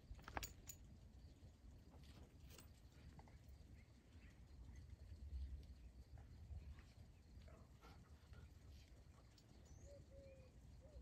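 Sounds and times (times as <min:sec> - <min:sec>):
faint bird chirps: 0:03.3 - 0:11.0.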